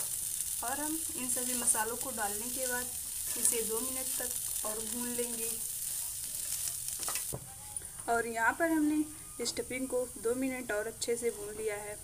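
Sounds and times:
stuffing sizzling in a frying pan: 0.0s - 12.0s.

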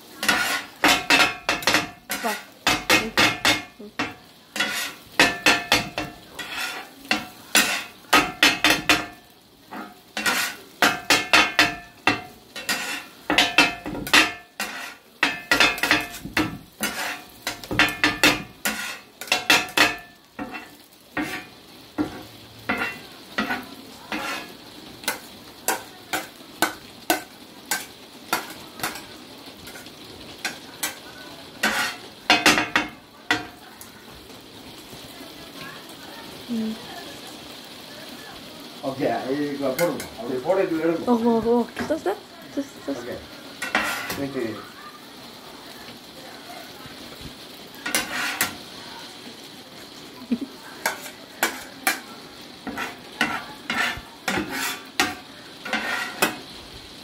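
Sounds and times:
food sizzling on griddle: 0.0s - 57.0s
metal blades clanging on griddle: 0.1s - 33.6s, 38.9s - 41.2s, 43.5s - 44.5s, 47.8s - 48.7s, 50.8s - 56.5s.

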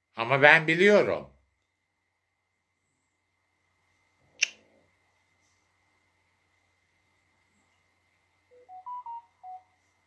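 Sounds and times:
faint high-pitched hum: 0.0s - 10.0s
electronic beep jingle: 8.5s - 9.8s.

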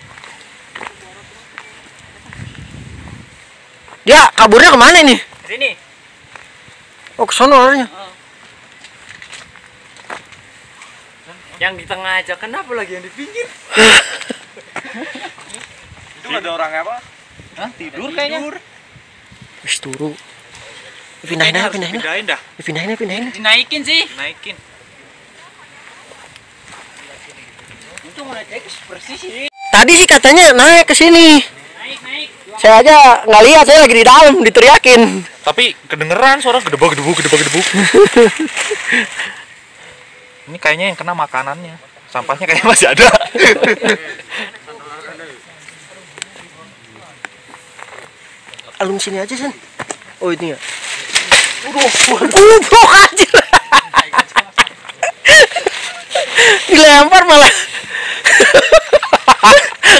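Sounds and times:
steady hiss: 0.0s - 59.9s.

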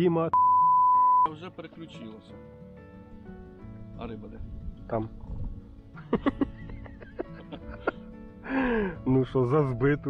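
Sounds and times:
background music with held notes: 1.3s - 10.0s
man laughing: 6.0s - 8.1s.

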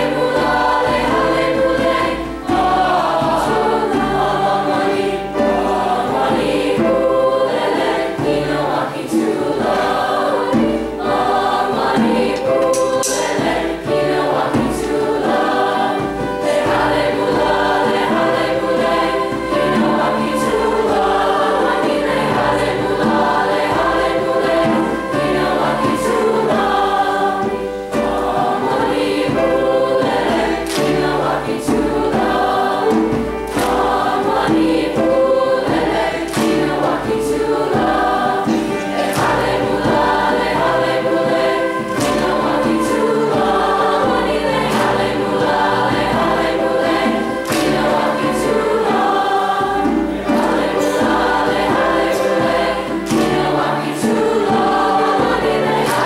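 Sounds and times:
large choir singing in parts: 0.0s - 56.0s
sharp percussive hits: 11.9s - 15.4s, 30.0s - 56.0s.

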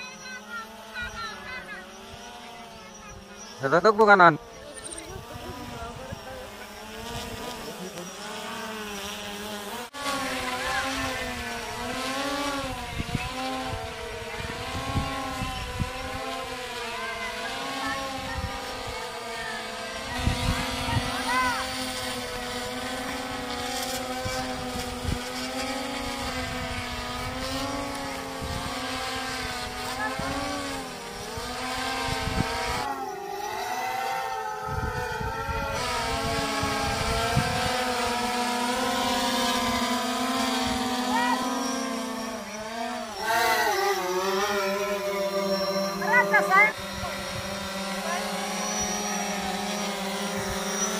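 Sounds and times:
drone propellers buzzing: 0.0s - 50.9s
wind on microphone: 4.6s - 7.7s, 10.1s - 16.8s, 19.7s - 41.4s, 42.0s - 50.9s.

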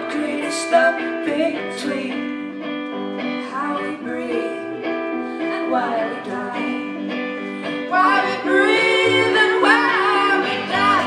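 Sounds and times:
woman singing: 0.0s - 2.6s, 3.2s - 11.0s
bass: 0.0s - 11.0s
electric guitar: 0.0s - 11.0s.

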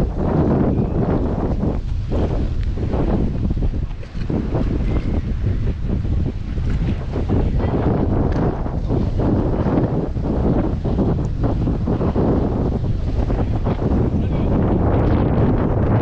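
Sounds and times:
sea waves washing against seawall: 0.0s - 16.0s
wind buffeting microphone: 0.0s - 16.0s.

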